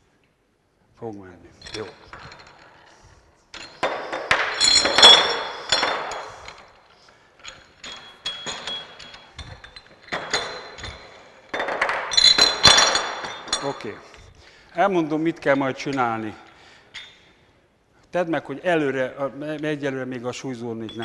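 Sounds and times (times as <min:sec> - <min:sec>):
metal weight plates clinking: 0:01.6 - 0:02.8, 0:03.5 - 0:14.0, 0:20.8 - 0:21.0.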